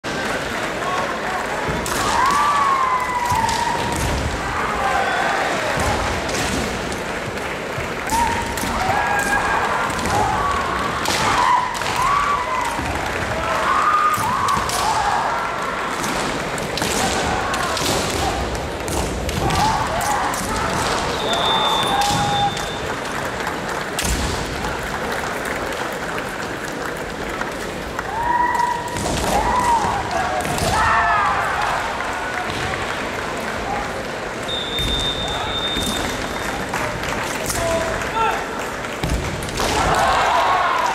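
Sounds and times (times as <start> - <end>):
large hall noise: 0.0 - 40.9.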